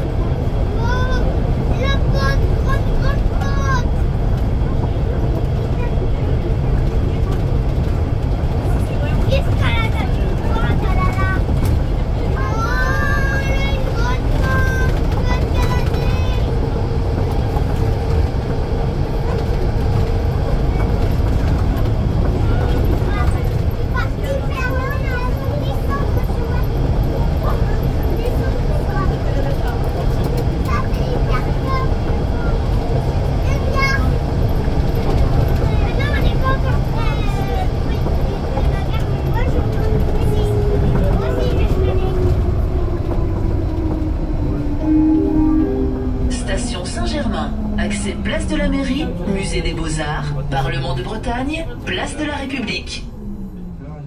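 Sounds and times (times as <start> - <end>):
passengers chattering: 0.0 - 54.0
train running rumble: 0.0 - 54.0
train motor whine: 36.6 - 54.0.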